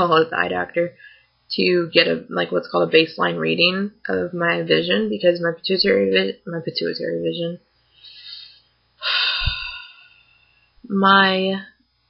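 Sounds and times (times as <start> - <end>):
faint breath in: 1.0 - 1.4, 7.9 - 10.8
person sighing: 8.1 - 10.3.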